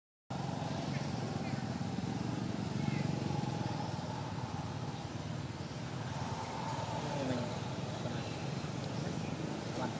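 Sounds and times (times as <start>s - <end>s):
vehicle engine running steadily: 0.3s - 9.9s.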